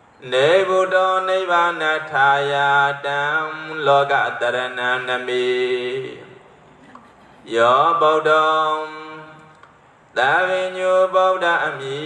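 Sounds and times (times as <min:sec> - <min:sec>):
man chanting through microphone: 0:00.2 - 0:06.5, 0:07.4 - 0:09.5, 0:10.2 - 0:12.0.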